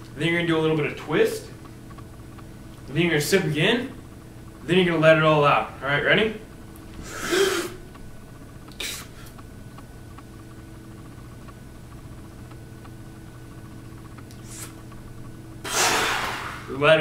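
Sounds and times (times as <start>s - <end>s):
low room tone hum: 0.0s - 17.0s
sharp sips of air: 8.8s - 9.2s, 14.4s - 14.8s, 15.6s - 16.7s
loud rush of breath: 15.7s - 16.7s.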